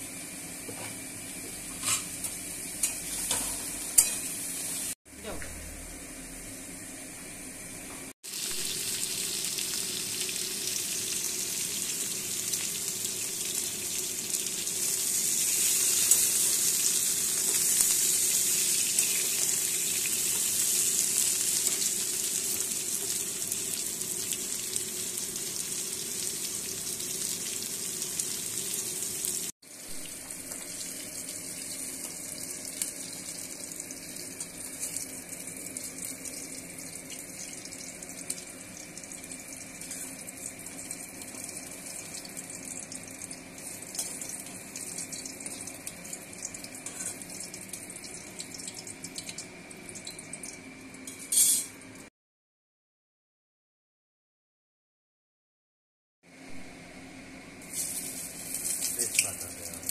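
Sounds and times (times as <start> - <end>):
vegetables sizzling in hot oil: 0.0 - 7.0, 8.2 - 50.6, 57.6 - 59.9.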